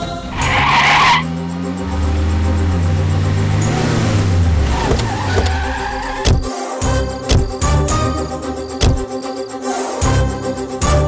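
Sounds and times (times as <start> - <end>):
engines slowing down: 0.0 - 6.5
tyres skidding: 0.0 - 9.1
background music: 0.0 - 11.0.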